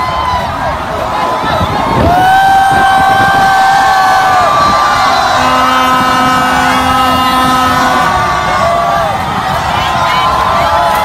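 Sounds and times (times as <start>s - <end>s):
crowd cheering: 0.0s - 11.0s
horn blasts: 2.7s - 11.0s.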